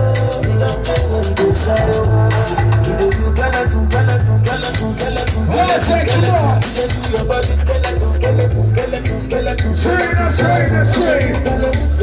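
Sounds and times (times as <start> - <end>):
loud live band music: 0.0 - 12.0.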